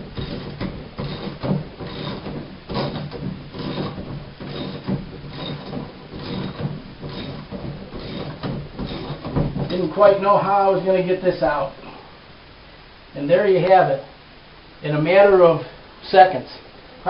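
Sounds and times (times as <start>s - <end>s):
metal tool clicking and scraping in drain: 0.1s - 9.8s.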